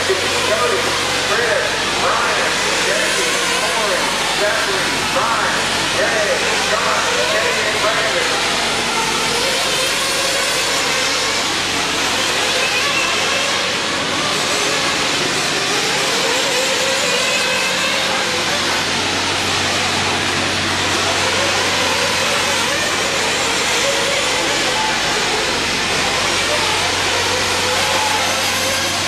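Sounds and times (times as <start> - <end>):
small engines whining and revving: 0.0 - 29.0.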